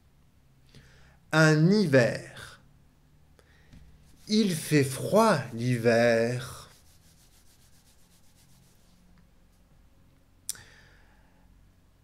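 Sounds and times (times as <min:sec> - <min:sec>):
hands rubbing on arms: 0:04.0 - 0:09.1.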